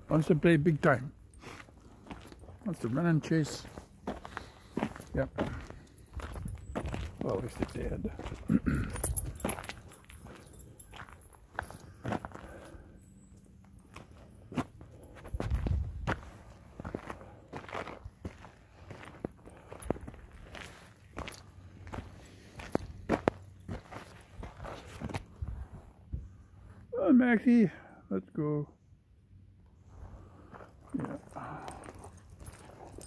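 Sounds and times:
footsteps walking: 0.1 - 12.9, 13.5 - 25.9.

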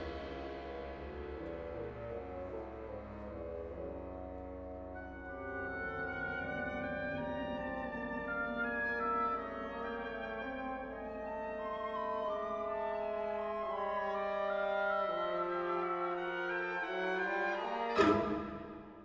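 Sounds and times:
orchestra playing sustained chords: 0.0 - 19.0.

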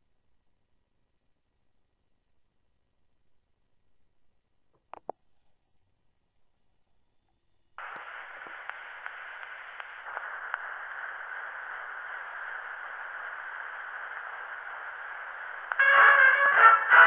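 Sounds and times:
faint stylus clicks: 7.3 - 11.1
phonograph cylinder surface hiss: 7.8 - 17.0.

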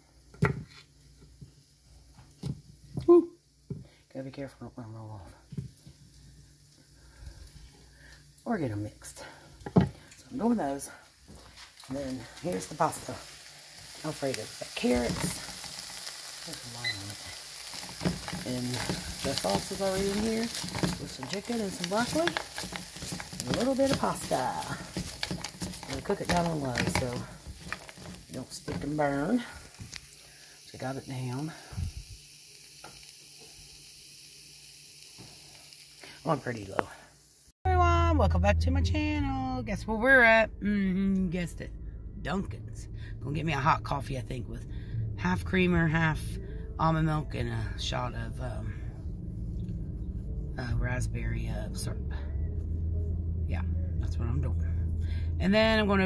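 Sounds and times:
food sizzling in a frying pan: 0.0 - 37.6
low steady hum: 37.7 - 56.0.

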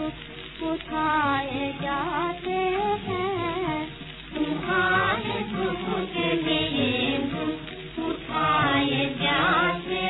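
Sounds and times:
musical accompaniment: 0.0 - 10.0
person singing: 0.0 - 10.0.

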